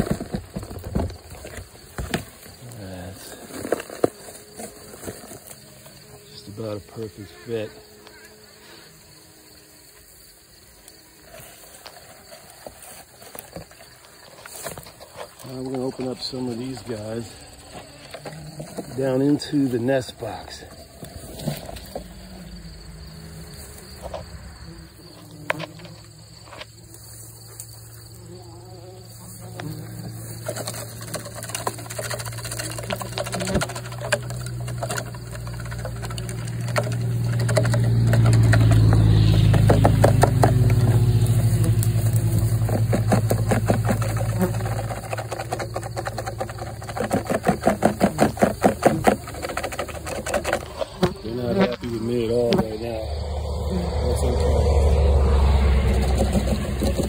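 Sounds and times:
bumblebees buzzing: 0:00.0 - 0:57.0
rapid ticks: 0:30.4 - 0:40.8, 0:41.7 - 0:51.1.

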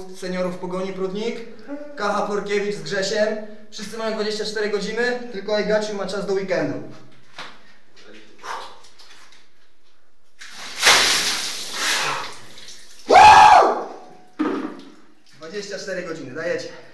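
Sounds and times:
water splashing in a shower: 0:10.4 - 0:15.9
man crying out: 0:13.1 - 0:14.0.

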